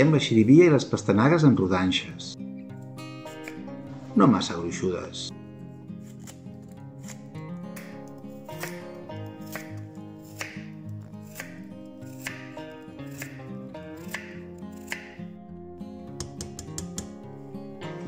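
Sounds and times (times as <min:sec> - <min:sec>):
background music: 0:00.0 - 0:18.0
knife chopping on wooden board: 0:07.8 - 0:08.8, 0:09.4 - 0:15.1, 0:16.2 - 0:17.2.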